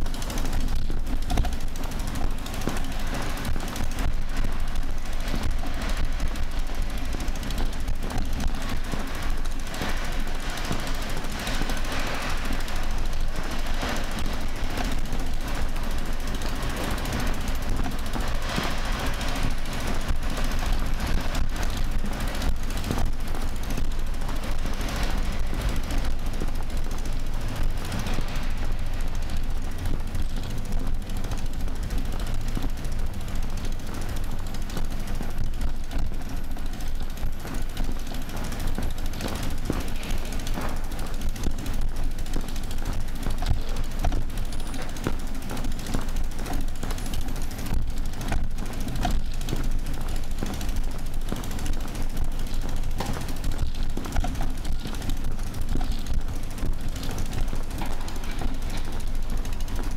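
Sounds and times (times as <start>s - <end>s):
bicycle rattling on paving: 0.0s - 59.9s
rumble of rolling wheels: 0.0s - 59.9s.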